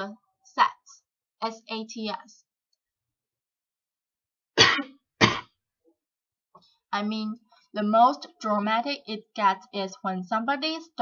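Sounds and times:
person coughing: 0:04.6 - 0:05.6.

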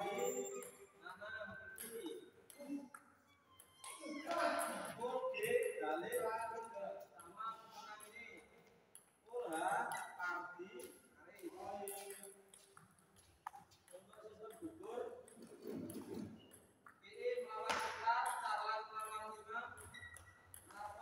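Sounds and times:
people talking: 0:00.0 - 0:02.9, 0:04.0 - 0:08.4, 0:09.3 - 0:12.3, 0:14.0 - 0:15.9, 0:17.1 - 0:20.0, 0:20.7 - 0:21.0
ping pong ball clicks: 0:01.7 - 0:05.7, 0:19.0 - 0:21.0.

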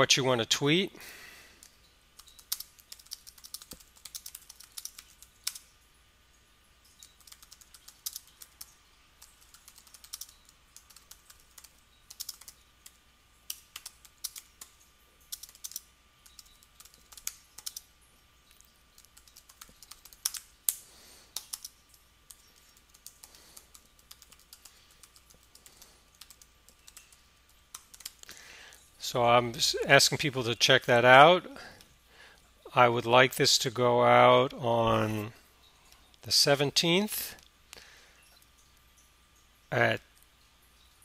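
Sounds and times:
keyboard typing clicks: 0:01.6 - 0:05.6, 0:07.0 - 0:17.9, 0:18.5 - 0:28.3.

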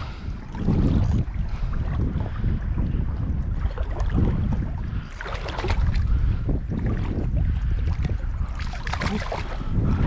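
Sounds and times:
water sloshing and lapping: 0:00.0 - 0:10.0
wind on microphone: 0:00.0 - 0:10.0
splashing: 0:03.6 - 0:10.0.

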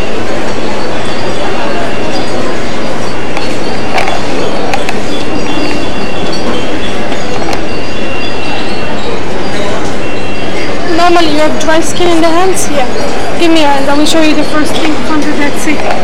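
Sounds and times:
indistinct voices: 0:00.0 - 0:16.0.

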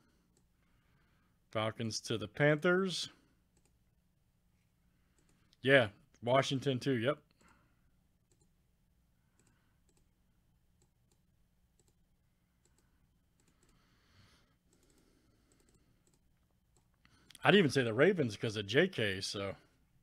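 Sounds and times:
computer mouse clicks: 0:00.3 - 0:00.5, 0:03.5 - 0:03.8, 0:05.1 - 0:05.6, 0:08.2 - 0:08.6, 0:09.3 - 0:10.1, 0:10.8 - 0:12.0, 0:12.6 - 0:13.8, 0:14.6 - 0:17.4.

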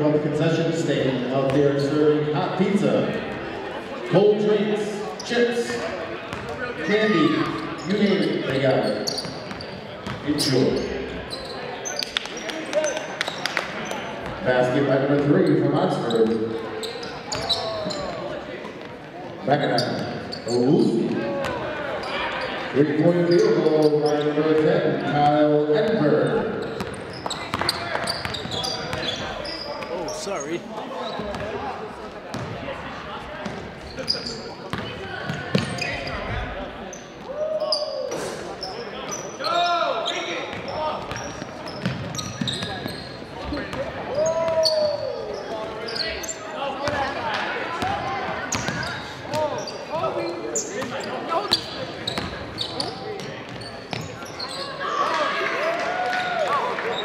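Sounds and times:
murmur of people talking: 0:00.0 - 0:57.0
sneakers squealing on floor: 0:05.1 - 0:25.2, 0:25.9 - 0:31.7, 0:32.3 - 0:32.6, 0:33.4 - 0:55.3, 0:56.1 - 0:57.0.

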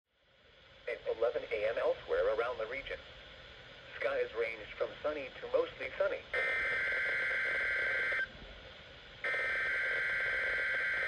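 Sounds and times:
radio hiss: 0:00.5 - 0:11.0
weather report voice on radio: 0:00.9 - 0:03.0, 0:03.9 - 0:06.3.

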